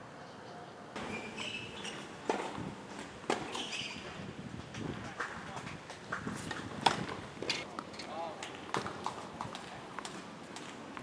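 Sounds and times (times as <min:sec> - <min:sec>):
tennis racket hitting ball: 0:01.0 - 0:03.7
tennis ball bouncing: 0:01.0 - 0:03.9, 0:06.1 - 0:09.2.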